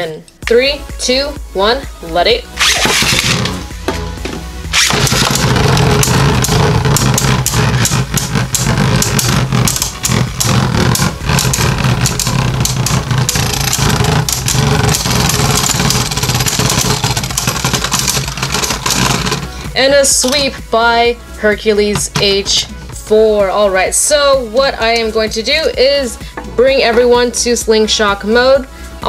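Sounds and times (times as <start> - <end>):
spinning tops whirring: 2.6 - 3.7, 4.7 - 20.6.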